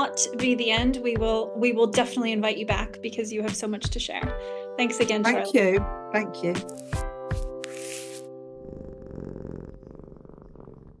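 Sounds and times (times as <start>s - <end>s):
cat purring: 8.6s - 11.0s.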